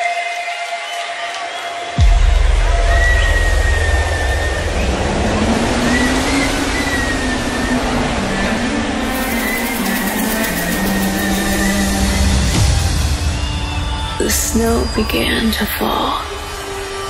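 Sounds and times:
deep bass rumble: 2.0s - 10.2s.

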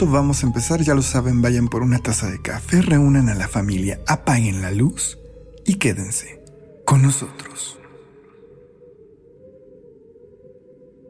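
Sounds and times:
low wavering drone: 0.0s - 11.0s.

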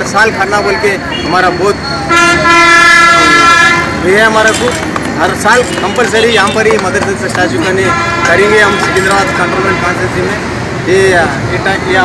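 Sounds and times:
street interview speech: 0.0s - 12.0s
vehicle horn long blast: 2.1s - 3.9s, 7.7s - 10.0s.

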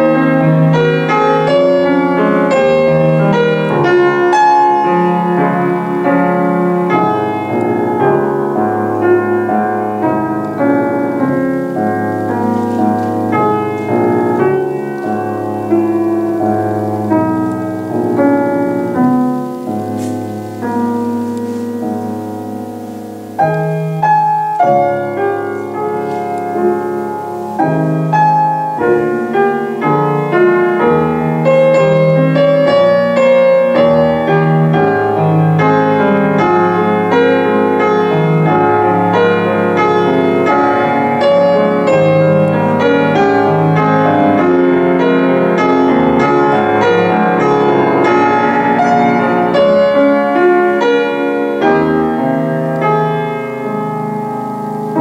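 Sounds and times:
solo grand piano: 0.0s - 55.0s.

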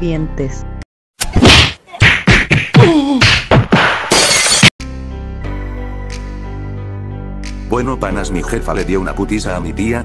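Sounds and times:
background music with sustained chords: 4.8s - 10.0s.

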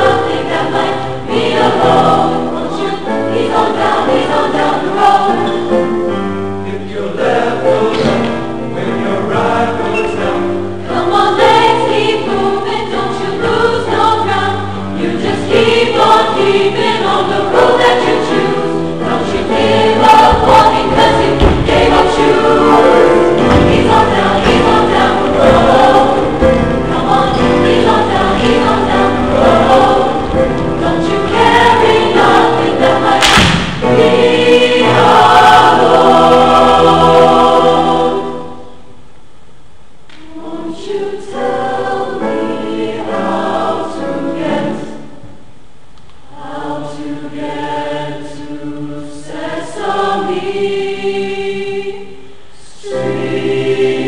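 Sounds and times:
mixed choir singing: 0.0s - 38.9s, 40.1s - 45.4s, 46.2s - 54.0s
thumps: 20.2s - 22.4s.

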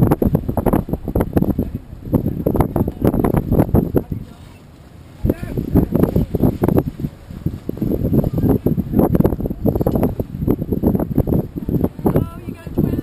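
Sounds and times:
wind and chop thumping on boat: 0.0s - 13.0s
faint voices: 1.6s - 9.8s.

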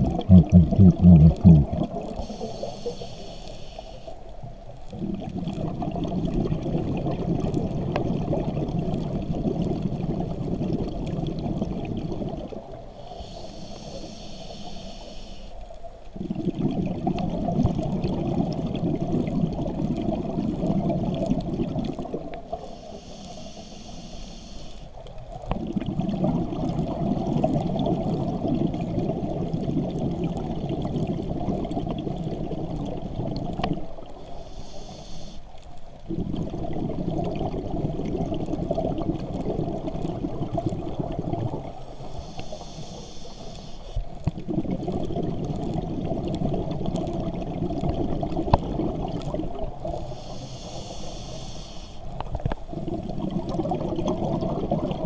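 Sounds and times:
exhaled bubbles underwater: 0.0s - 3.2s, 4.6s - 14.8s, 16.1s - 22.9s, 25.0s - 35.0s, 35.9s - 42.9s, 44.0s - 51.4s, 52.1s - 55.0s
regulator hiss on inhale: 1.0s - 4.4s, 12.9s - 15.9s, 22.5s - 25.1s, 34.0s - 36.0s, 41.8s - 44.2s, 49.9s - 52.7s.

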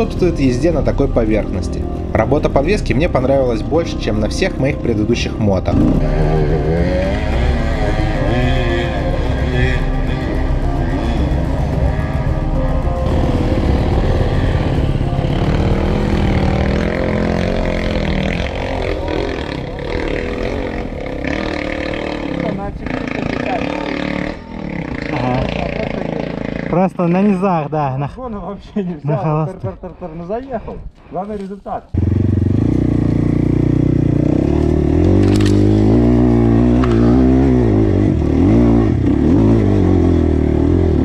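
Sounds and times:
dirt bike engines revving: 0.0s - 27.6s, 31.9s - 41.0s.

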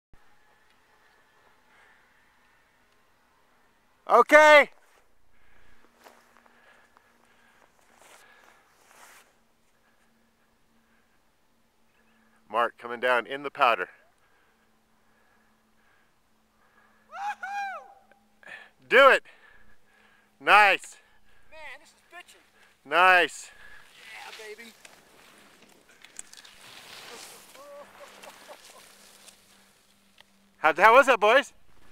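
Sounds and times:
soft rustling: 4.8s - 10.1s, 23.6s - 30.4s
skis swishing through snow: 7.8s - 9.4s, 23.4s - 29.9s
faint steady hum: 13.8s - 30.8s
faint distant person calling: 27.0s - 28.8s.

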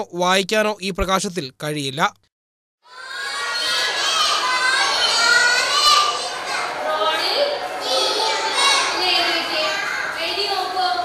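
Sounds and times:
children talking and calling out: 2.8s - 11.0s.

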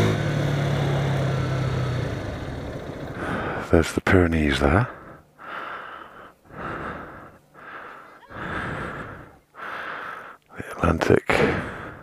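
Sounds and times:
person breathing hard: 3.2s - 3.7s, 4.9s - 10.5s, 11.4s - 12.0s.

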